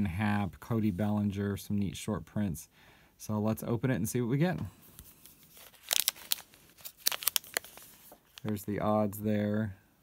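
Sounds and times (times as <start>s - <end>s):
plastic wrapper crinkling: 4.9s - 8.8s.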